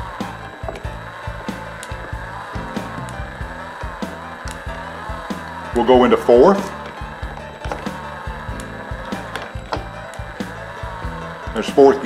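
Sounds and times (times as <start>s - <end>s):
background music: 0.0s - 12.0s
gears humming: 0.0s - 12.0s.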